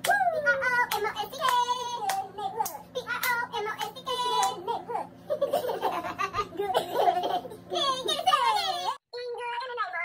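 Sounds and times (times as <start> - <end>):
handclaps: 0.9 - 4.6.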